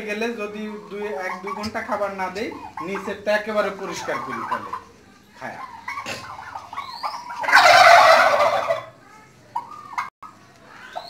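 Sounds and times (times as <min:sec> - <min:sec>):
turkey gobbling: 0:00.2 - 0:11.0.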